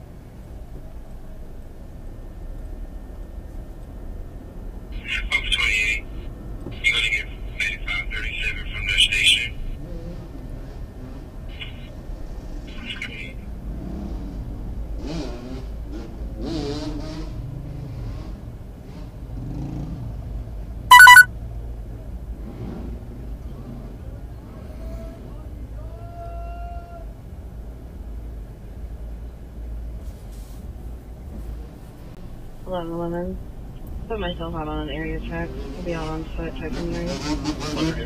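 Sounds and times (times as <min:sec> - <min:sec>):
loud pitched beep: 0:20.9 - 0:21.3.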